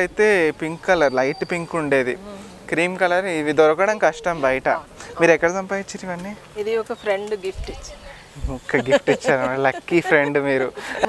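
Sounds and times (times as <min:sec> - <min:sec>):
person making drawn-out vocal sounds: 0:02.1 - 0:02.7.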